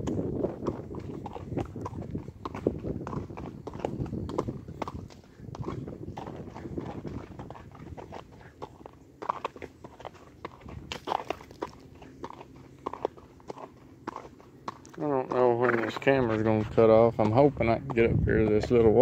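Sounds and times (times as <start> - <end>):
horse hoofbeats on gravel: 0.0 - 19.0.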